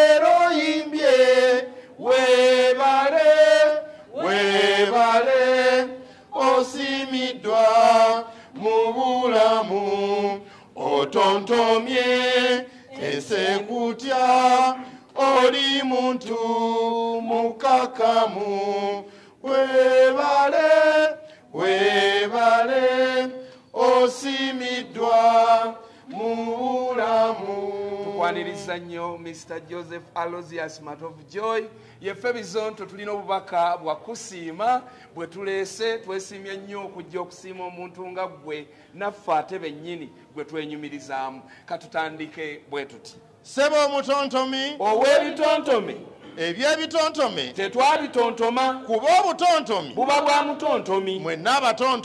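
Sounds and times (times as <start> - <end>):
voices chanting: 0.0 - 29.1
person chanting: 23.8 - 29.2.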